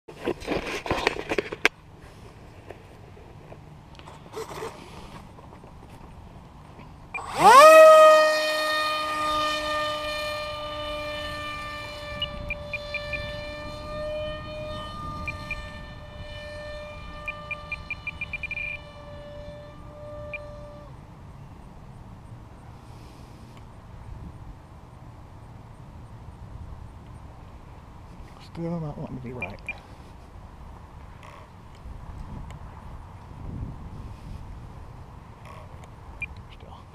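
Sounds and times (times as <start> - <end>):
electric motor high whine: 7.0 - 21.1
wind buffeting microphone: 7.2 - 21.2, 26.4 - 36.3.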